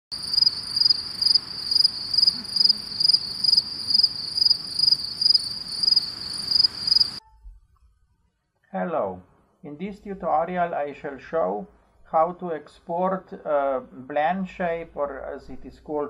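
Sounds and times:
insect chirping: 0.1 - 7.2.

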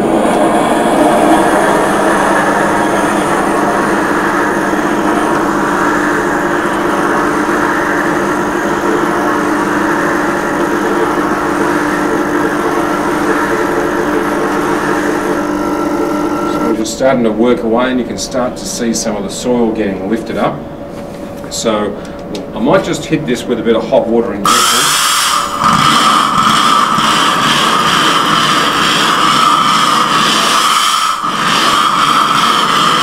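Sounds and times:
steam cleaner humming and hissing: 0.0 - 17.0, 24.4 - 33.0.

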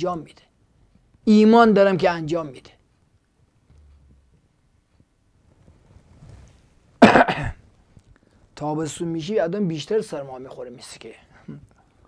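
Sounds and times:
man coughing: 7.0 - 7.6.

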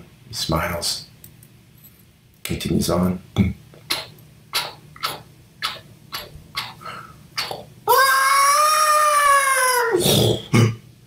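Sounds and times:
high-pitched scream: 7.9 - 10.0.

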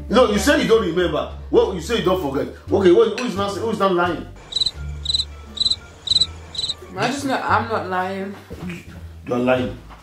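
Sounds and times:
cricket chirps: 4.4 - 6.8.

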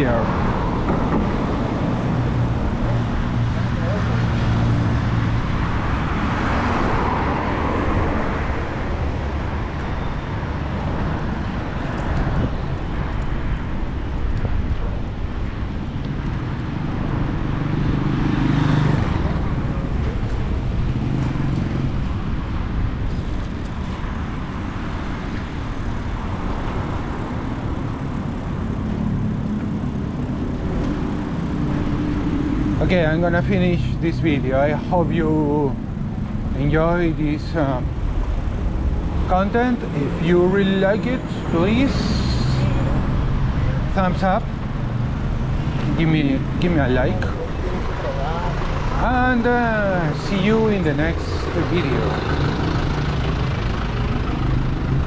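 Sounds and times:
car engines: 0.0 - 55.0
road noise: 0.0 - 55.0.

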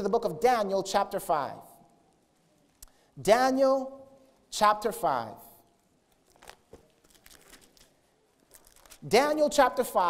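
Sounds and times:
thin pages being turned: 6.1 - 9.1.

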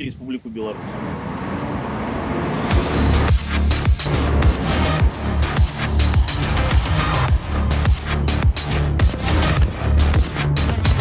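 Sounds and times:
armoured vehicle engine rumble: 0.5 - 7.7
heavy bass music beats: 2.7 - 11.0.

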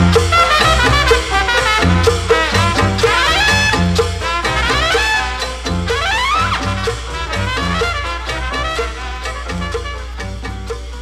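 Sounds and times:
bass: 0.0 - 11.0
horn section with sliding notes: 0.0 - 11.0
percussion: 0.0 - 11.0.

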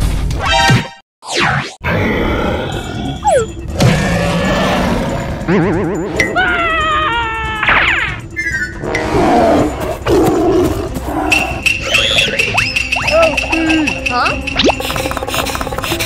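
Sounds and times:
growling roar: 1.9 - 3.2, 3.8 - 5.5
cartoon music: 3.1 - 3.6, 5.5 - 9.2, 11.2 - 16.0
cartoon pig crying: 5.6 - 8.0.

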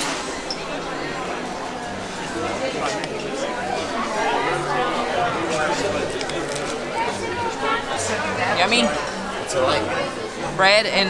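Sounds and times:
diners chattering: 0.0 - 11.0.

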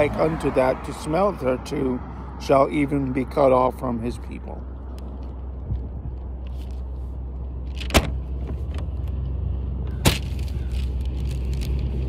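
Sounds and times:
low motor rumble: 2.8 - 12.0.

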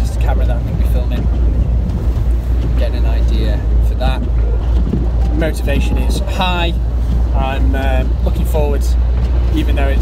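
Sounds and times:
car driving rumble inside cabin: 0.0 - 10.0
man speaking: 5.2 - 8.9.

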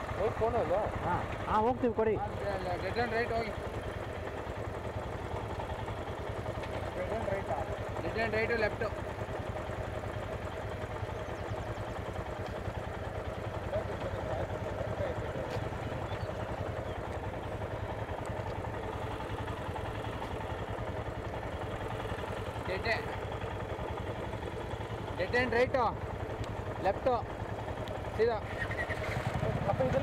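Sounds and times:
motorcycle engines idling: 0.0 - 30.0.

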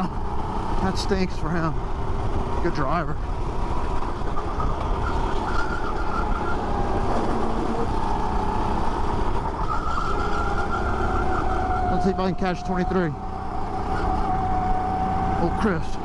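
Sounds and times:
low wind rumble on microphone: 0.0 - 15.4
go-kart engine whining: 0.0 - 16.0.

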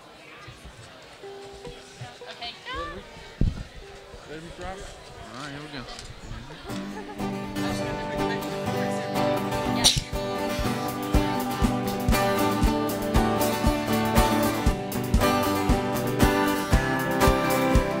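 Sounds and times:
church band music with held notes: 6.8 - 18.0
steady low drum beat: 10.0 - 18.0.

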